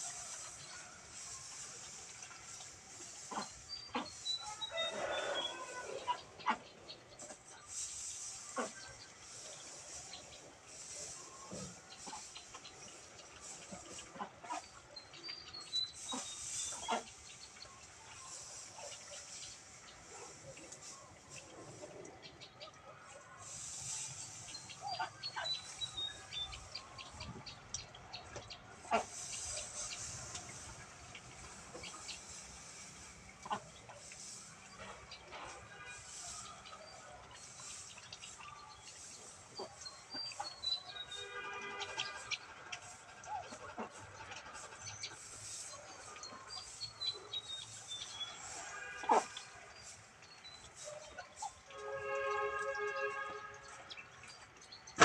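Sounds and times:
chickens clucking: 0.0s - 51.8s
dry straw rustling and crackling: 0.0s - 55.0s.

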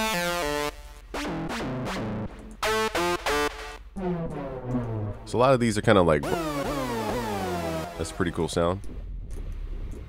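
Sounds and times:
synthesizer notes and chords: 0.0s - 10.0s.

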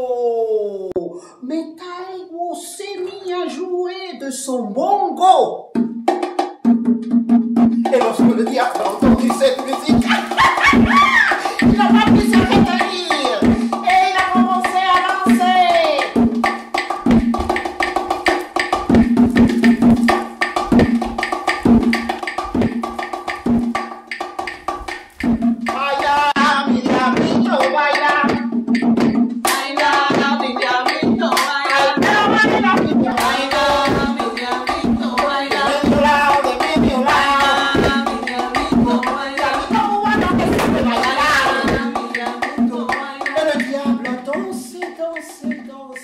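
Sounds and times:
bongos played by hand: 5.7s - 46.0s
voices singing and calling out: 7.9s - 16.2s, 25.7s - 28.6s, 29.4s - 46.0s.

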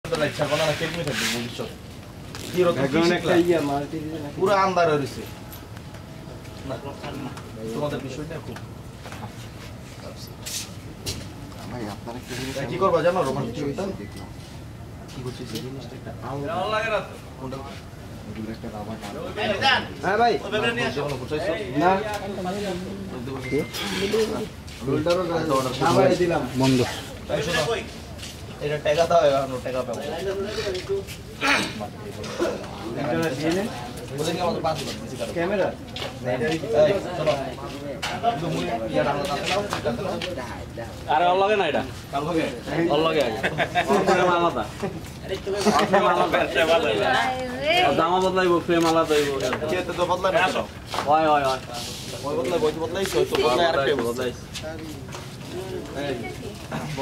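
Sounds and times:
low steady background noise: 0.0s - 57.0s
people talking: 15.0s - 57.0s.

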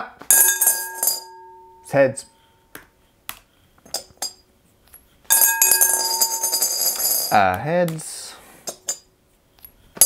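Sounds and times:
glass ringing: 0.3s - 2.4s, 5.3s - 7.3s
coin rattling in glass bowl: 5.3s - 7.4s.

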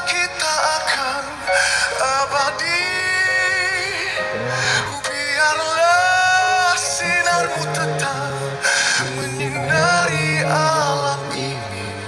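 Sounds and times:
backing music: 0.0s - 12.0s
man singing a ballad: 0.0s - 12.0s.

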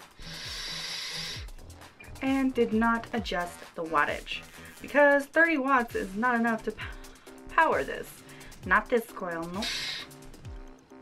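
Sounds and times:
airy hiss of vape draw: 0.0s - 1.5s, 9.6s - 10.3s
background music with bass line: 0.0s - 11.0s.

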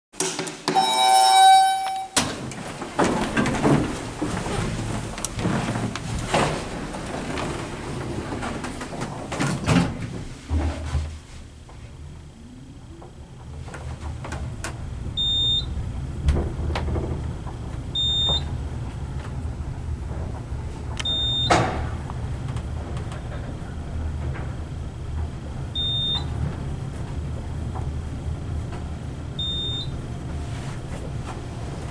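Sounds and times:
elevator clunk: 0.3s - 10.2s, 13.5s - 31.9s
elevator arrival chime: 0.8s - 2.2s, 15.2s - 15.8s, 17.9s - 18.5s, 21.0s - 21.6s, 25.7s - 26.4s, 29.3s - 30.5s
short high electronic beep: 0.8s - 2.2s
elevator rumble: 0.8s - 31.9s.

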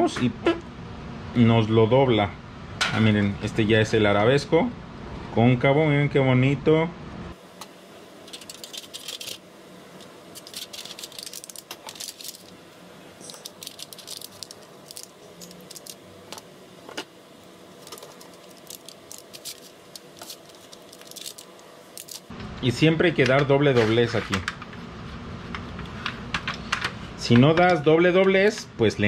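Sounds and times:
metal foil crinkling: 8.2s - 9.4s, 10.3s - 12.6s, 13.2s - 16.4s, 17.7s - 22.3s.

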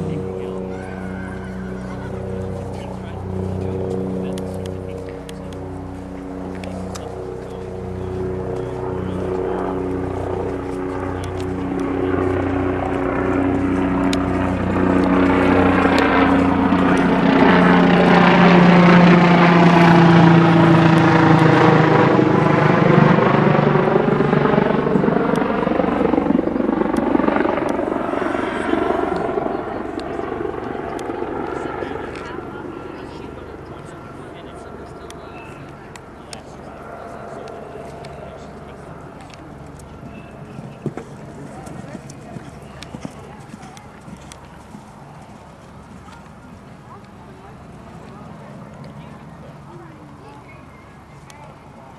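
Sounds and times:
low-flying aircraft engine drone: 0.0s - 51.9s.

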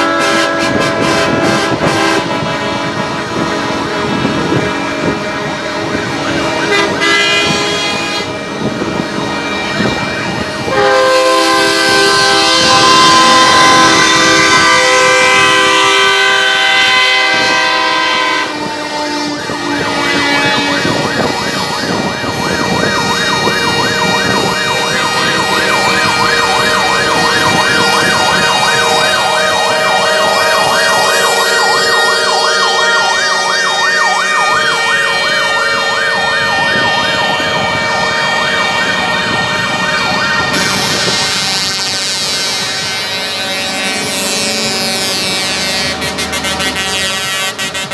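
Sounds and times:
siren yelping: 0.0s - 45.2s
truck air horns: 0.0s - 47.9s.

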